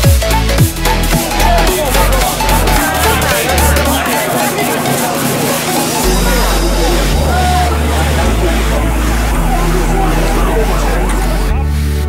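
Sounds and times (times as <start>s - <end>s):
electronic dance music: 0.0s - 12.0s
voices: 0.3s - 12.0s.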